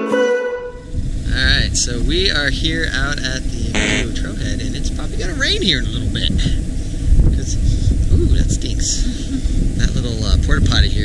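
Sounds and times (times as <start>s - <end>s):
wind buffeting microphone: 0.7s - 11.0s
person talking: 1.3s - 6.6s, 7.4s - 11.0s.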